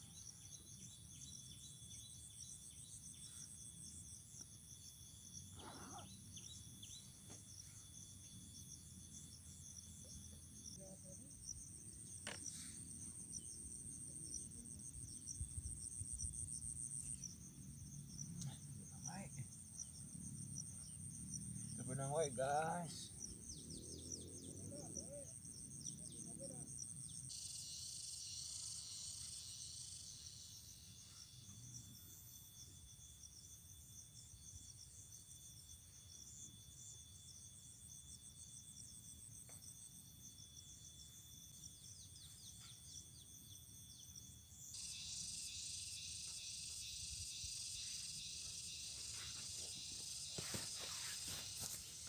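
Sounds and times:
insects chirring: 0.0 - 52.0.

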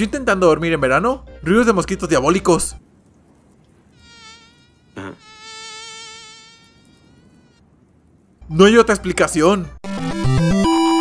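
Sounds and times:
mosquito whine: 3.9 - 7.6.

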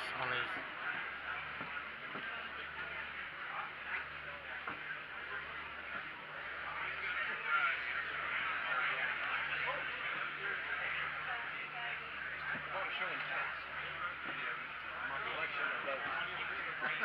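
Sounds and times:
crowd chatter: 0.0 - 17.0
steady low hum: 0.0 - 17.0.

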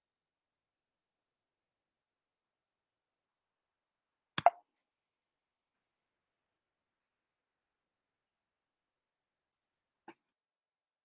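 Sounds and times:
short click and pop: 4.4 - 4.6.

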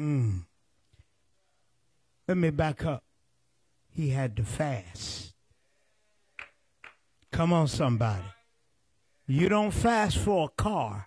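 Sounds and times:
man's wordless vocal through microphone: 0.0 - 0.6, 3.9 - 5.4, 7.3 - 8.4, 9.2 - 11.0.

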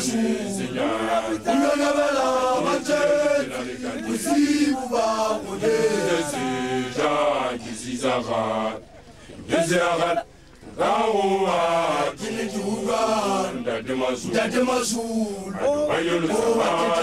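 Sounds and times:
young men chanting together: 0.0 - 8.8, 9.5 - 17.0.

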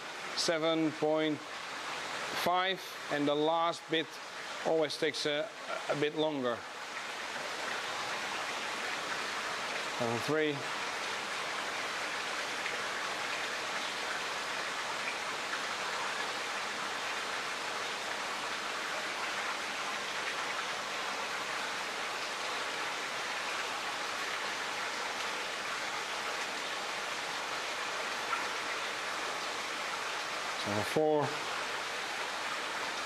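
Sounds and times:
splashing falling water: 0.0 - 33.0.

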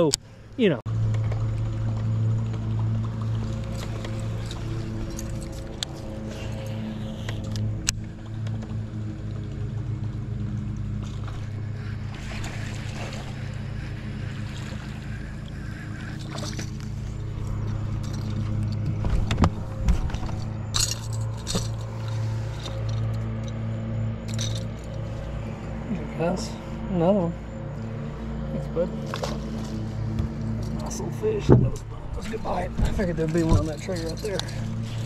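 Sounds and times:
steady low hum: 0.0 - 35.0
fish splashing: 11.0 - 18.9
knocks on boat: 31.4 - 31.8.

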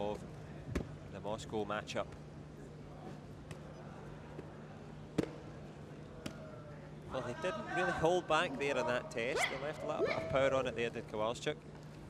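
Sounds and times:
low arena hum: 0.0 - 12.0.

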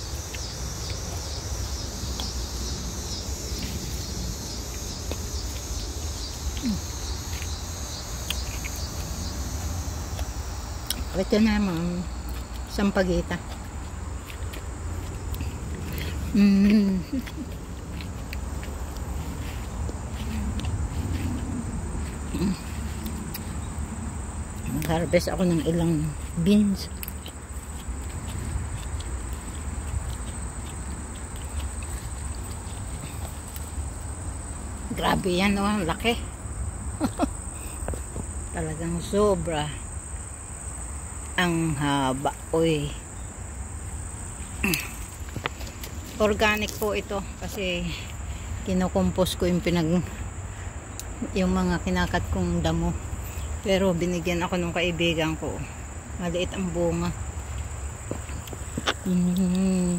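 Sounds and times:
insects chirping: 0.0 - 59.9.

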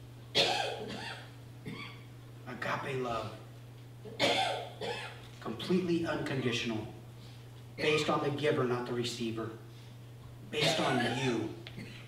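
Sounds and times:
person coughing: 0.4 - 2.0, 4.1 - 5.2, 10.6 - 12.0
throat clearing sound: 10.6 - 12.0.

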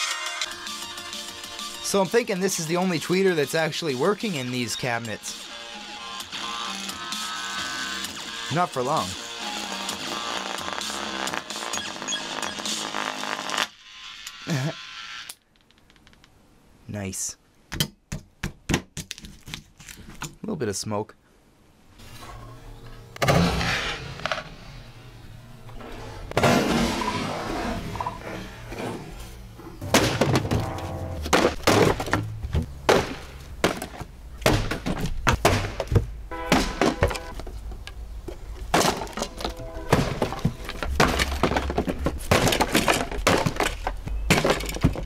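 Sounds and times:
background music: 0.0 - 12.2, 29.8 - 31.6, 39.0 - 41.8
wood cracking and breaking: 29.9 - 37.3, 38.6 - 45.0.

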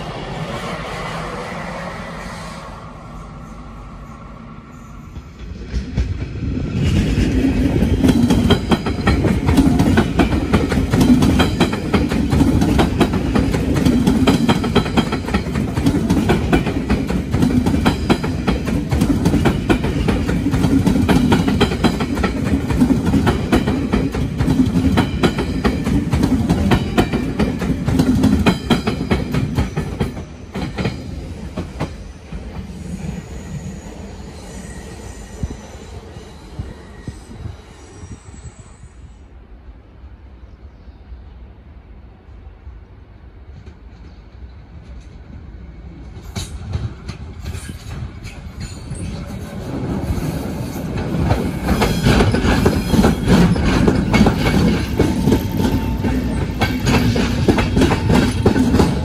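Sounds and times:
passenger train passing: 0.0 - 59.0
wheels clicking on rails: 46.2 - 59.0.

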